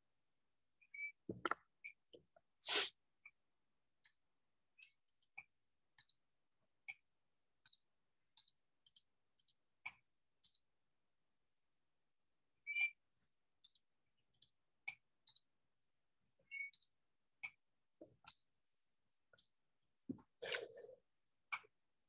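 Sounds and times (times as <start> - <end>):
keyboard and mouse clicks: 4.8 - 6.2, 7.6 - 10.7, 13.6 - 15.5, 16.5 - 18.5.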